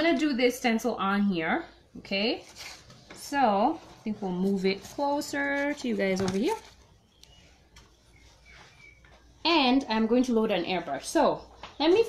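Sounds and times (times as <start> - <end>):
faint high chirps: 7.0 - 9.4.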